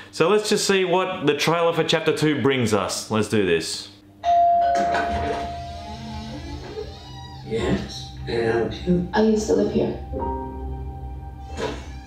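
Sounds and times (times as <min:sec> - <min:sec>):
held ringing note: 0:04.2 - 0:06.6
low rumbling drone: 0:05.3 - 0:12.0.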